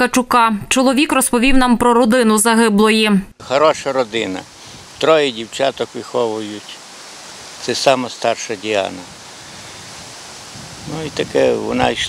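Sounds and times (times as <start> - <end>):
outdoor background hiss: 0.8 - 12.0
man speaking: 3.4 - 6.8, 7.6 - 9.2, 10.8 - 12.0.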